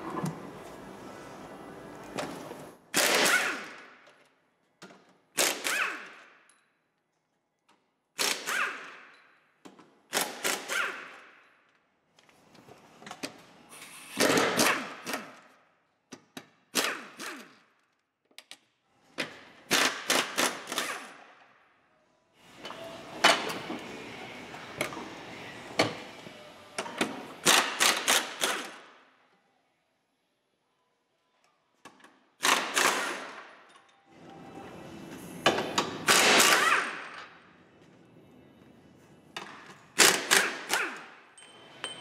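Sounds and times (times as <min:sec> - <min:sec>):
pneumatic impact wrench rattling: 0:02.9 - 0:03.9, 0:05.4 - 0:06.3, 0:08.2 - 0:09.1, 0:10.1 - 0:11.2, 0:32.4 - 0:33.4, 0:36.0 - 0:37.3, 0:40.0 - 0:41.2.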